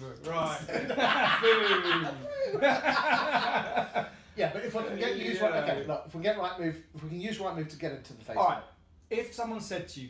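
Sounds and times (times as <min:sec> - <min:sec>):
men laughing: 0:00.4 - 0:05.4.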